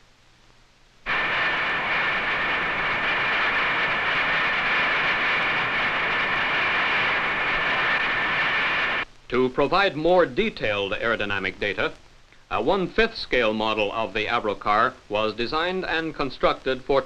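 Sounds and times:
wind tunnel airflow rush: 1.1 - 9.0.

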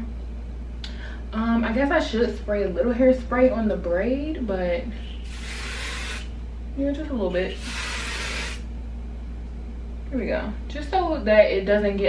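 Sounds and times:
low steady hum: 0.0 - 12.0
aerosol hairspray hissing: 5.2 - 6.3, 7.5 - 8.6.

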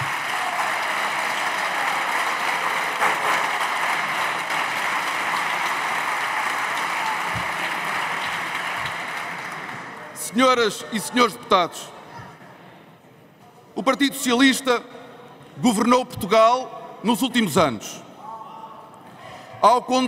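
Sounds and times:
large group applauding: 0.0 - 10.2.

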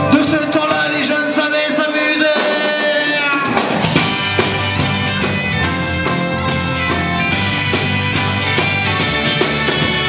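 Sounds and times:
folk-rock band playing: 0.0 - 10.0
reedy bombarde melody: 3.3 - 10.0.

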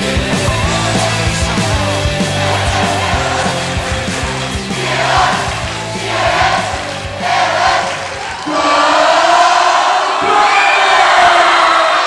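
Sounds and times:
rock music: 0.0 - 8.3
crowd shouting and cheering: 0.0 - 12.0.

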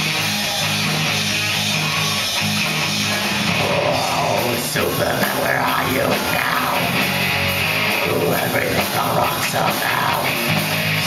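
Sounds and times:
distorted electric guitars: 0.0 - 11.0
heavy rock band playing: 0.0 - 11.0.

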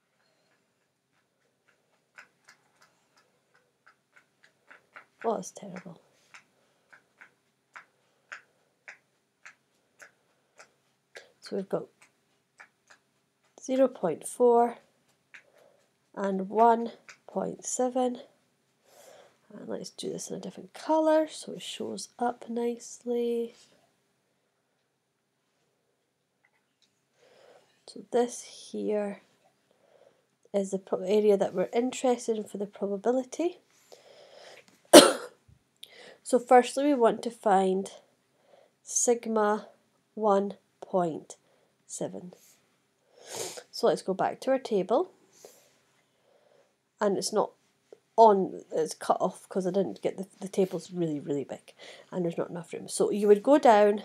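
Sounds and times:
faint regular ticking: 0.0 - 18.3
woman coughing: 34.9 - 35.4.

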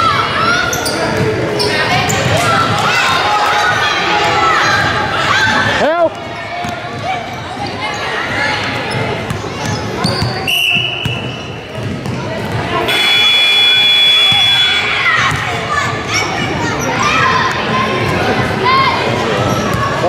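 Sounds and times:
voices in a gym: 0.0 - 20.0
shoe squeal: 0.5 - 2.4, 8.9 - 11.8, 12.9 - 15.3, 19.4 - 19.8
referee whistle blast: 10.5 - 11.4, 12.9 - 15.1
steady high tone: 12.9 - 15.1.

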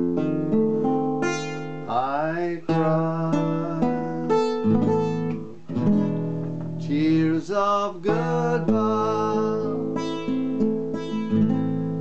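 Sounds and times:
nylon-string guitar fingerpicked: 0.0 - 12.0
man singing: 1.9 - 4.6, 6.8 - 10.1.

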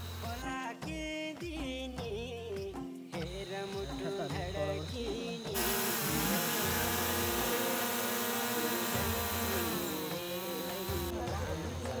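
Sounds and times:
drone propellers buzzing: 5.6 - 11.2.

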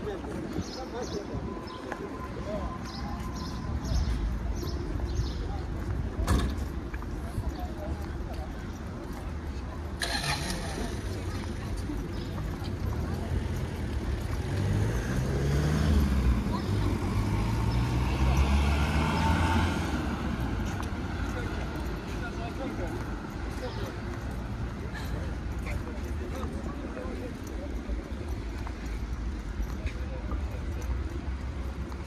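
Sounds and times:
indistinct voices of passersby: 0.0 - 32.0
road traffic: 0.0 - 32.0.

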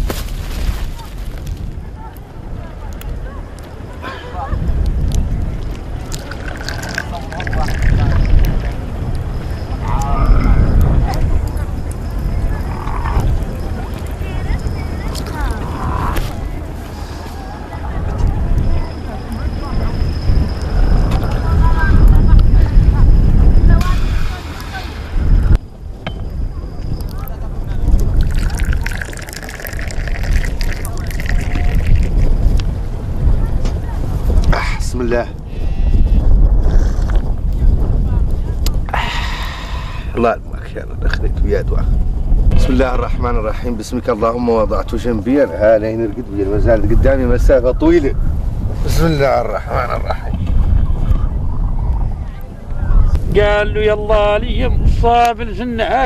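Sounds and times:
wind rumble on microphone: 0.0 - 56.0
wood fire crackling: 28.0 - 32.9.

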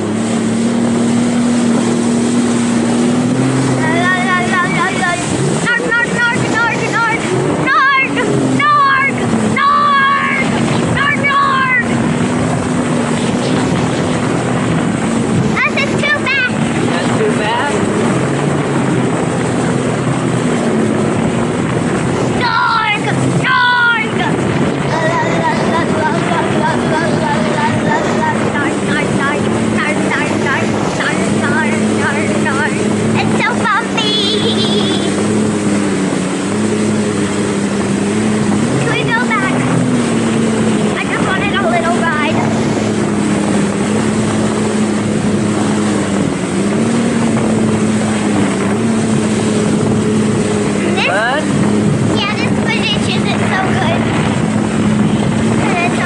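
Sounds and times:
jet ski engine running: 0.0 - 56.0
wind on microphone: 0.0 - 56.0.

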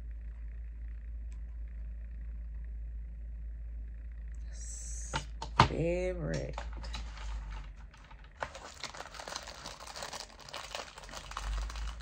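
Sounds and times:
wrapper crinkling and rustling: 6.5 - 12.0.

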